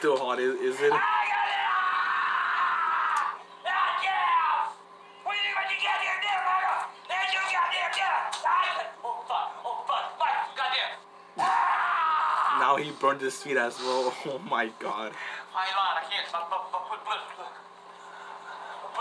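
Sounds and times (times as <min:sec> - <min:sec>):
man screaming in pain: 0:00.9 - 0:04.7, 0:11.4 - 0:12.8.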